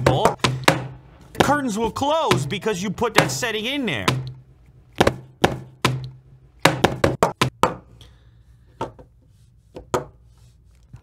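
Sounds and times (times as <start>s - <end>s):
boxes knocking on a table: 6.6s - 7.8s.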